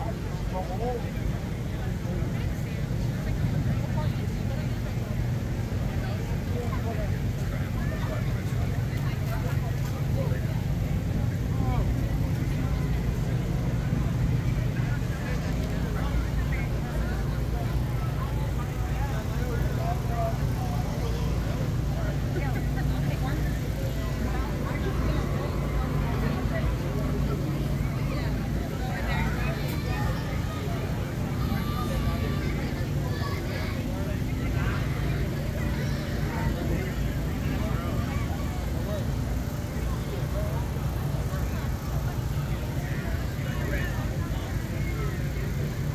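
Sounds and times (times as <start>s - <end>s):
crowd chatter: 0.0s - 45.9s
generators humming: 0.0s - 45.9s.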